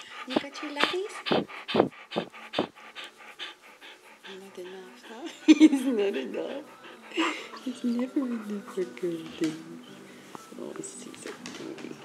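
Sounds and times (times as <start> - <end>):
dog panting: 0.0 - 10.0, 10.8 - 12.0.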